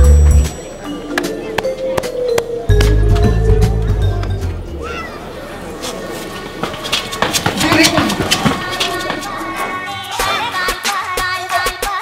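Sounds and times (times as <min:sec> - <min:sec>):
background music: 0:00.0 - 0:04.9
indistinct voices: 0:00.0 - 0:11.3.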